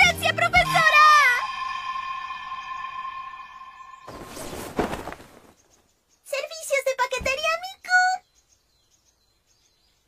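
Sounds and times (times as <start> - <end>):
high-pitched voice holding a vowel: 0.0 - 1.6
faint high chirps: 0.6 - 4.6.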